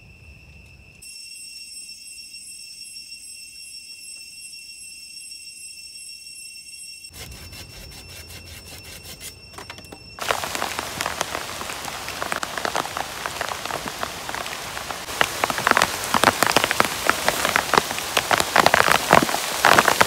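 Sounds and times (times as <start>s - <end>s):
plastic tarp crinkling and rustling: 10.2s - 20.0s.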